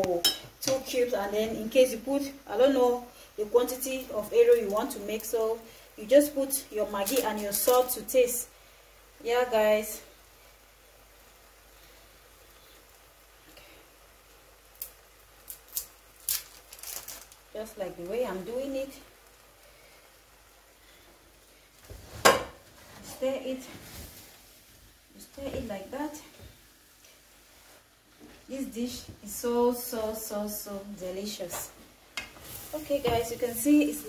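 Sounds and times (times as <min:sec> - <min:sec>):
wrapper crackling: 0:06.8 - 0:08.0, 0:14.7 - 0:19.4
wooden spoon stirring greens in pot: 0:31.3 - 0:34.0
person speaking: 0:32.7 - 0:34.0.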